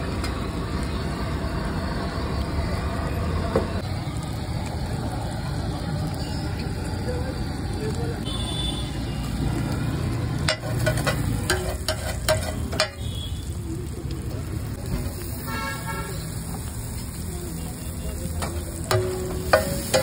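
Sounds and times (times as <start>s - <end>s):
eggs sizzling on a griddle: 0.0s - 20.0s
vehicle horn toot: 8.3s - 9.0s, 12.9s - 13.4s, 15.5s - 16.3s
metal spatula scraping griddle: 10.5s - 13.0s, 18.4s - 20.0s.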